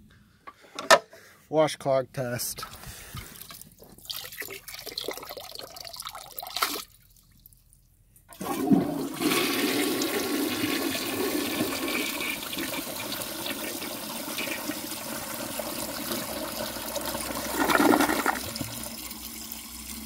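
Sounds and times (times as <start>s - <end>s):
toilet flushing: 8.4s - 20.0s.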